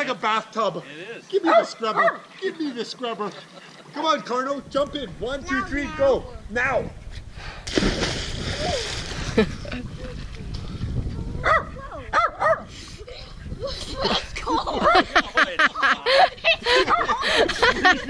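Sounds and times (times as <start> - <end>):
splash into water: 7.6 - 9.5.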